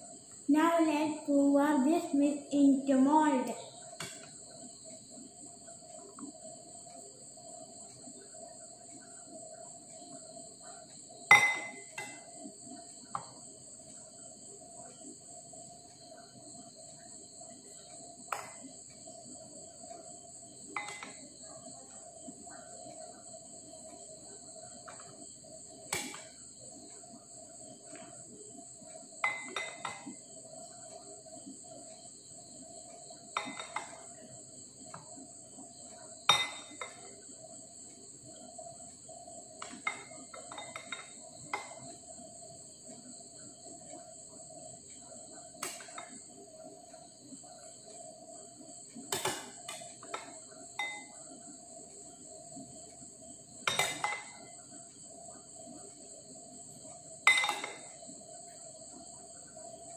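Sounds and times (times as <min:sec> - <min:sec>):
metal spoon clinking on glass bowl: 0:20.8 - 0:21.2, 0:29.2 - 0:30.1, 0:36.3 - 0:37.0, 0:50.8 - 0:51.1, 0:57.3 - 0:57.9.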